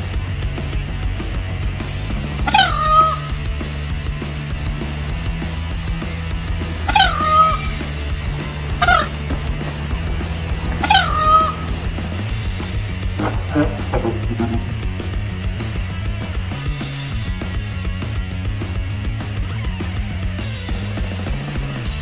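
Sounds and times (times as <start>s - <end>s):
background music: 0.0s - 22.0s
peacock calling: 2.4s - 3.5s, 6.6s - 12.0s, 13.1s - 14.8s.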